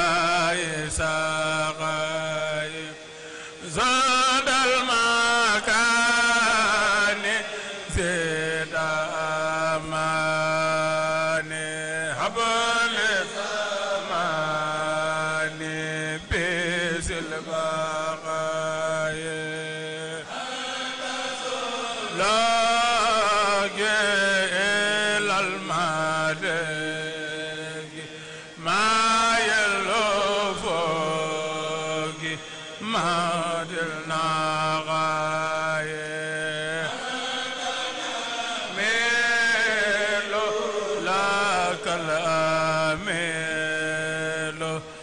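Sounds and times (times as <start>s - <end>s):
men chanting into microphones: 0.0s - 45.0s.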